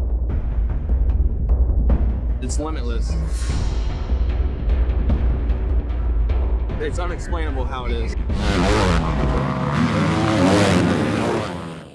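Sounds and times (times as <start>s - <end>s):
dirt bike engine revving: 8.2s - 11.9s.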